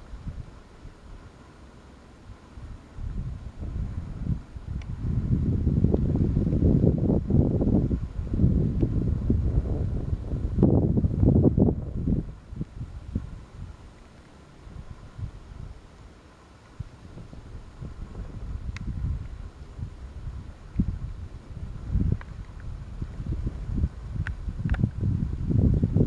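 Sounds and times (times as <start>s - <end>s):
wind buffeting microphone: 0.0s - 1.5s, 2.2s - 26.0s.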